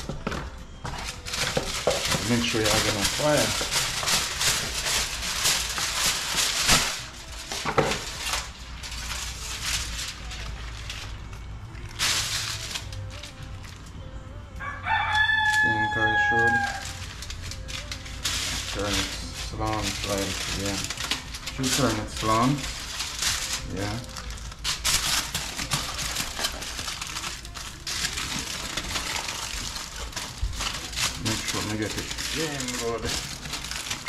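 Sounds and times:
aluminium foil crinkling: 0.0 - 34.0
rooster crowing: 14.6 - 17.0.

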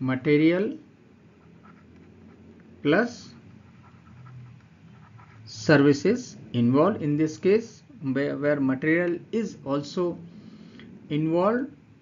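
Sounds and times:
stylus scratching on pen tablet: 1.3 - 2.4, 3.2 - 5.7.

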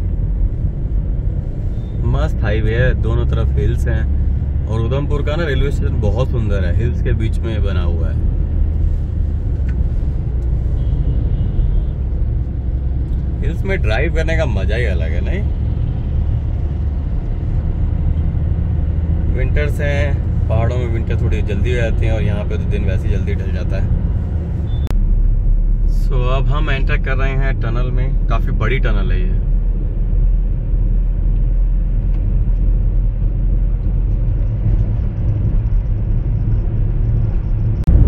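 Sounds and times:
car engine and tyre rumble: 0.0 - 38.0.

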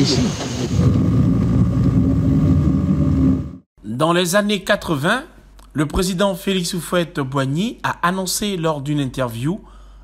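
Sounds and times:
noisy low rumble: 0.0 - 4.2.

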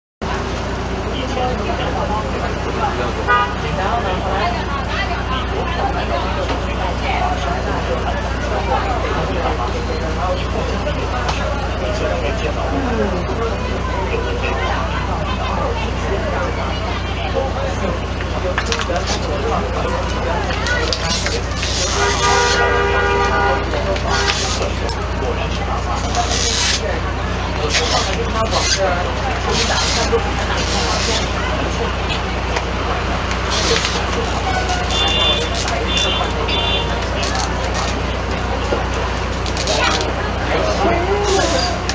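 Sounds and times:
bus engine low rumble: 0.2 - 41.9
nearby voices: 1.0 - 22.6, 23.3 - 41.9
vehicle horn toot: 3.3 - 3.6, 20.2 - 24.6, 34.4 - 37.0.

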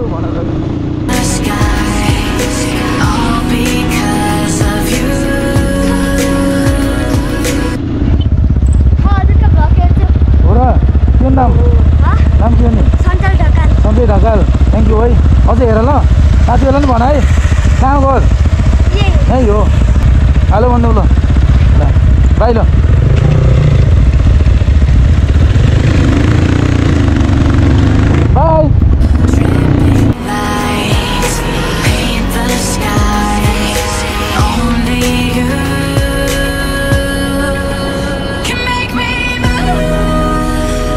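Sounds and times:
dirt bike engine idling: 0.0 - 37.5
high-pitched spoken phrases: 9.0 - 10.4, 12.0 - 13.9, 18.9 - 19.6.

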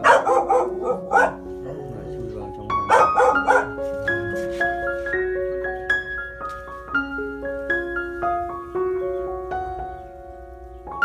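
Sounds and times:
dog barking: 0.0 - 2.0, 2.8 - 3.8
sustained keyboard music: 0.0 - 11.0.

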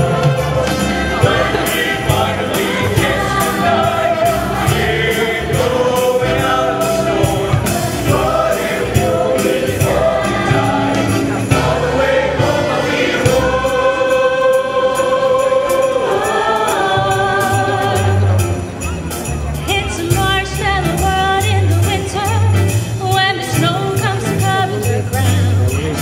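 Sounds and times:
choir singing in harmony: 0.0 - 18.8
bass and percussion accompaniment: 0.0 - 26.0.

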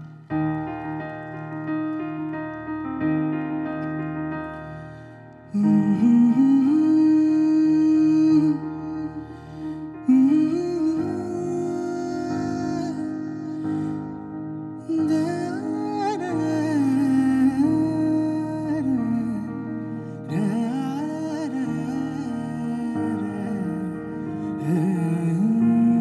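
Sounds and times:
piano chord: 0.0 - 26.0
man humming slow melody: 10.0 - 13.6.

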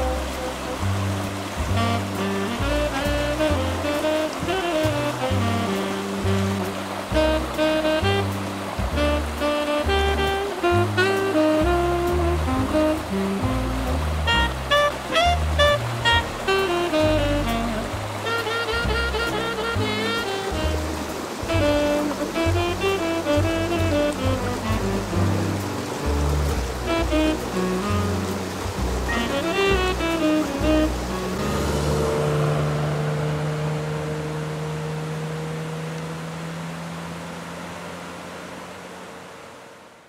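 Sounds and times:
melody over pulsing bass: 0.0 - 37.4
stream water running: 0.0 - 40.0.

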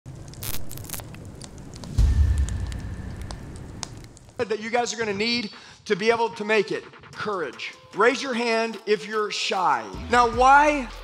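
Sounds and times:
crackling sparks: 0.0 - 9.1
deep boom with low rumble: 1.8 - 4.2.

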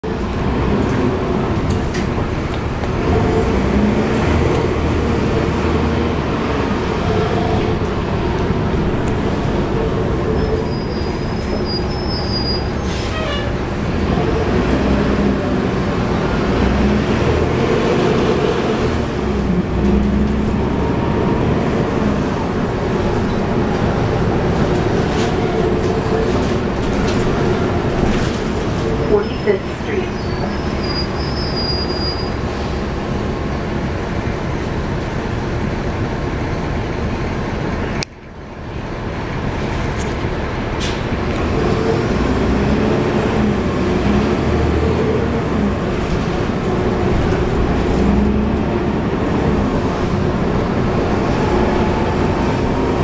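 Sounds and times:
diesel bus engine running: 0.0 - 53.0.

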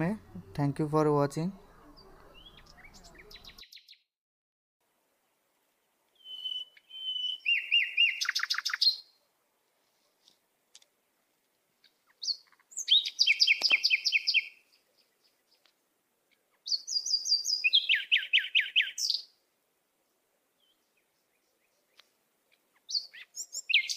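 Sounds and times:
bird chirping rapidly: 1.6 - 4.0, 6.2 - 9.1, 12.2 - 14.7, 16.6 - 19.3, 22.7 - 23.9.

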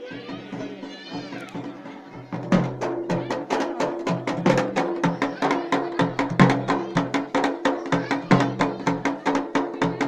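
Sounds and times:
fast barrel drum strikes: 0.0 - 10.0.

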